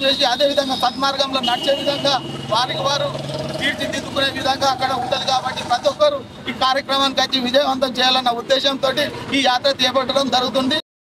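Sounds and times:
man speaking: 0.0 - 10.8.

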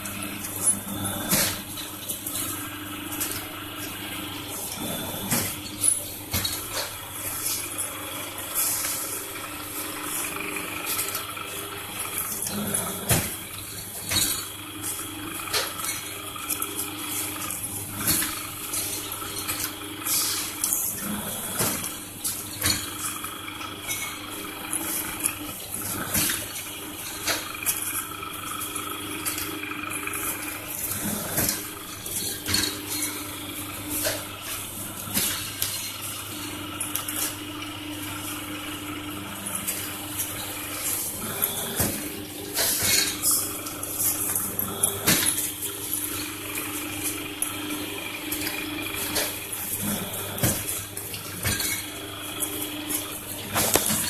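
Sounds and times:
press machine humming and rushing: 0.0 - 54.0.

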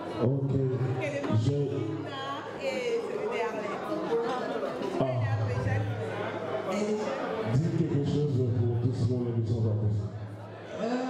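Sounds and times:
man talking into a microphone: 0.0 - 2.0, 6.7 - 11.0
guests chattering: 0.0 - 11.0.

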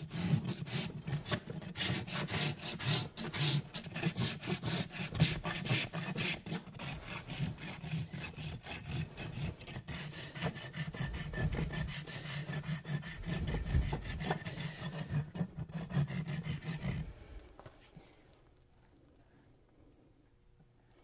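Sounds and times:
rasp filing horse hoof: 0.0 - 17.2.

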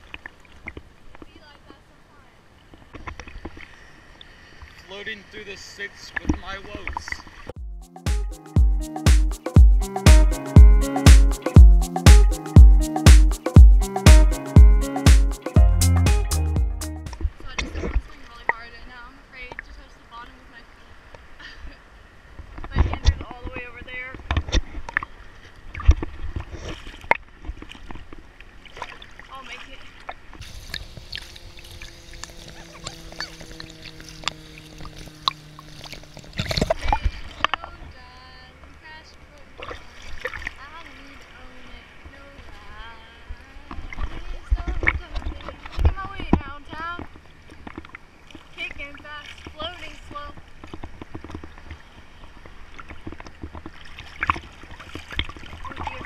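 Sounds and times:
water sloshing and lapping: 0.0 - 4.9, 17.2 - 56.0
faint steady drone: 30.4 - 39.5.

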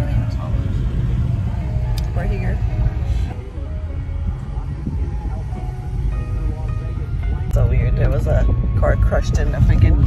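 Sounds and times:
car cabin rumble: 0.0 - 10.0.

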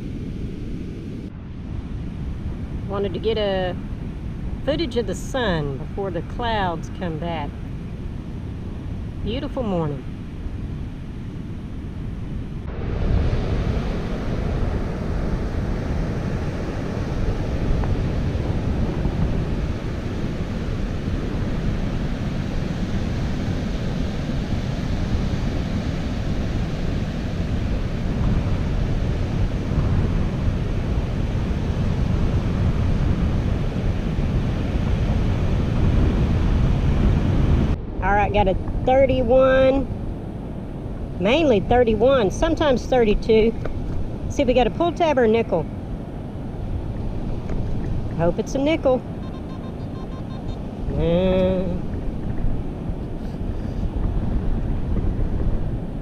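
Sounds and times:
wind rumbling on microphone: 0.0 - 56.0
surf washing onto beach: 12.6 - 38.0.

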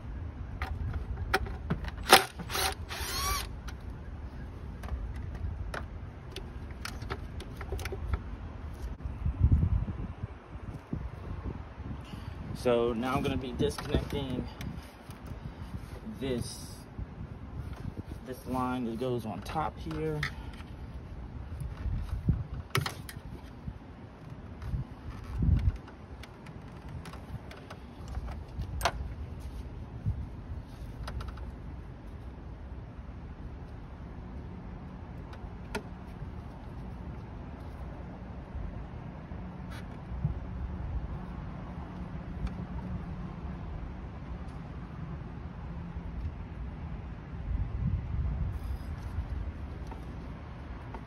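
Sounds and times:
steady low rumble: 8.0 - 51.0.

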